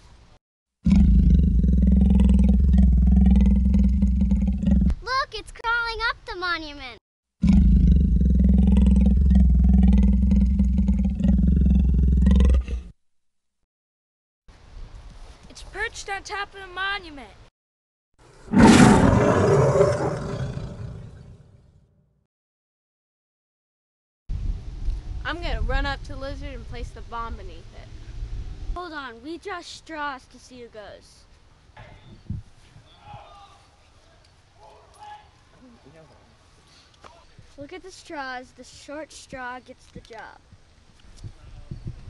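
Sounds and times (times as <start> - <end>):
monster roar: 0.8 - 4.9, 7.4 - 12.8, 18.5 - 21.4.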